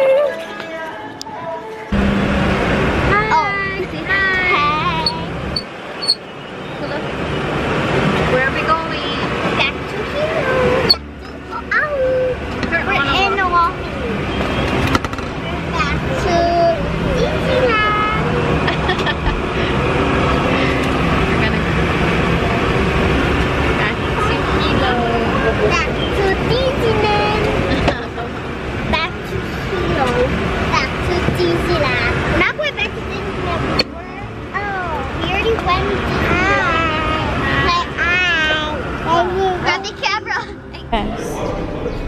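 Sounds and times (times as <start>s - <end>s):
short sharp sound: 1.9s - 3.3s
airliner cabin rushing hum: 1.9s - 6.3s, 7.0s - 32.8s
child's high voice: 9.6s - 14.1s, 15.7s - 18.3s, 25.7s - 27.9s, 34.6s - 40.9s.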